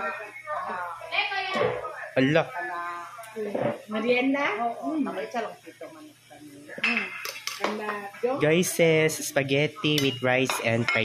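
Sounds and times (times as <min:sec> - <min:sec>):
cutlery clinking against plates: 0:06.8 - 0:08.0, 0:09.9 - 0:11.0.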